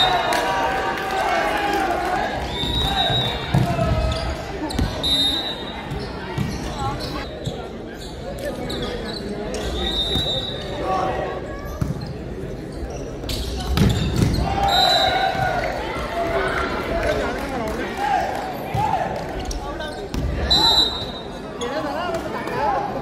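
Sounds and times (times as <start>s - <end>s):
shoe squeaks: 4.0s - 10.7s.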